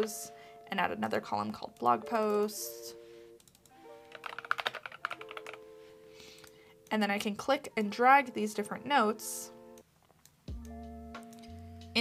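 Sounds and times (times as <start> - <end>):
soft background music: 0.0 - 12.0
computer keyboard key clicks: 3.4 - 5.6.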